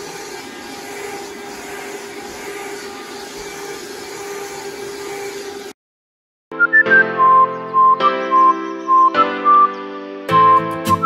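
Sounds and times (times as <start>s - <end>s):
vacuum cleaner running: 0.0s - 5.8s.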